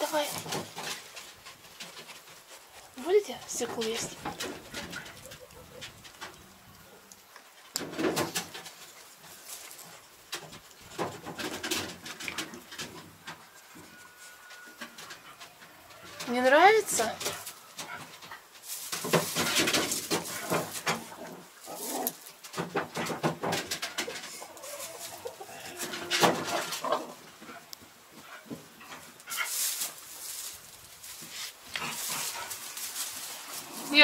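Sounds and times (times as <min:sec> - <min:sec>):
hay and straw rustling: 0:00.0 - 0:34.0
sheep knocking in wooden pen: 0:22.6 - 0:24.3.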